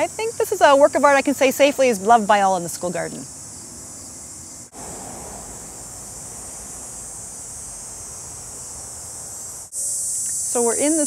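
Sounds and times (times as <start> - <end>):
insect chorus: 0.0 - 11.0.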